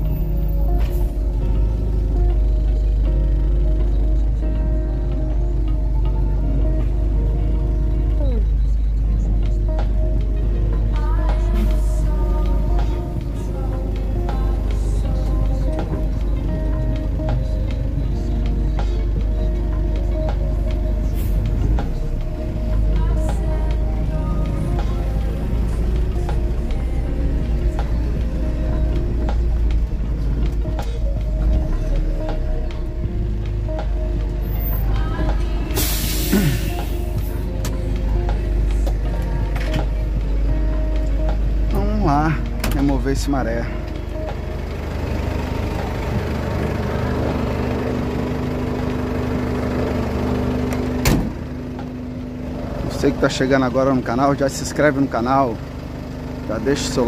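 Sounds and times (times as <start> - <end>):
background music: 0.0 - 57.0
truck engine running: 0.0 - 57.0
loud hiss: 35.8 - 37.1.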